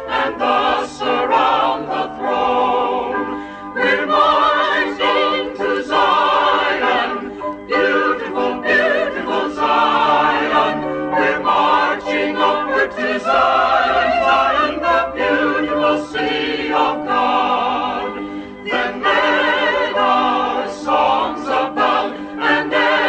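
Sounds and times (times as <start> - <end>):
choir singing a hymn: 0.0 - 23.0.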